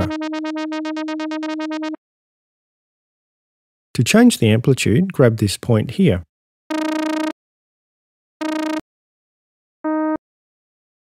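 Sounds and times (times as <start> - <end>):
synthesizer notes with wobble: 0.0 - 2.0.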